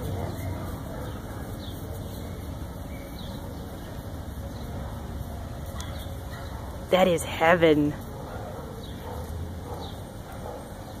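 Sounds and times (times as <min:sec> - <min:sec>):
quiet dog noises: 0:00.0 - 0:11.0.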